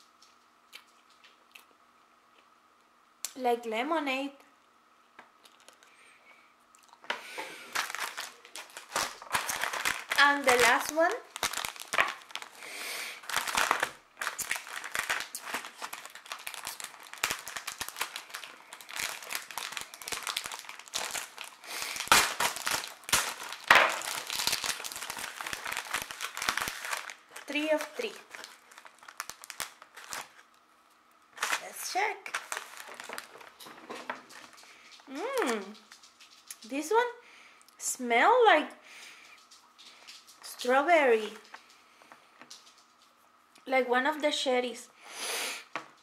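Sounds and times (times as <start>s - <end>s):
plastic candy wrapper crinkling: 5.4s - 5.9s, 6.7s - 36.8s, 39.3s - 41.8s, 42.4s - 43.2s.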